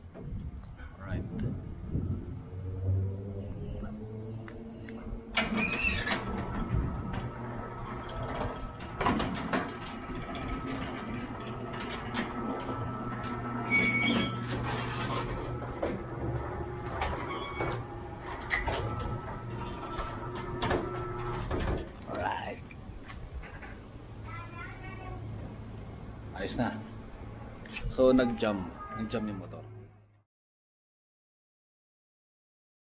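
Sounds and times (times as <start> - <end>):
gate motor humming and whining: 1.5 - 21.8.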